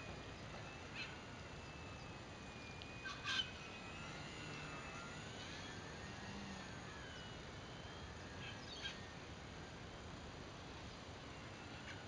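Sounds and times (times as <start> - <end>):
distant model plane motor whine: 0.0 - 12.0.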